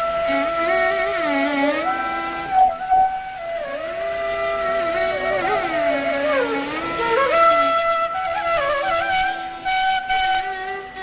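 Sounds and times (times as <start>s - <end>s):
bamboo flute melody: 0.0s - 11.0s.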